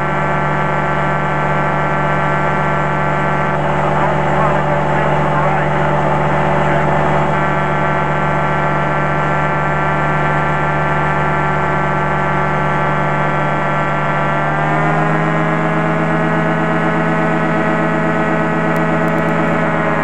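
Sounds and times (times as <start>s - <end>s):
light aircraft engine droning: 0.0s - 20.0s
indistinct voice: 3.4s - 8.0s.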